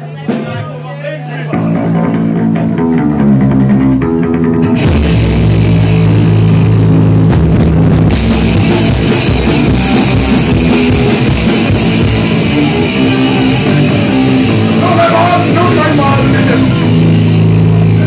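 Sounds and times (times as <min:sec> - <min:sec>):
bass guitar: 0:00.0 - 0:18.0
drums: 0:00.0 - 0:18.0
live rock band: 0:00.0 - 0:18.0
electric guitar riff: 0:01.6 - 0:18.0.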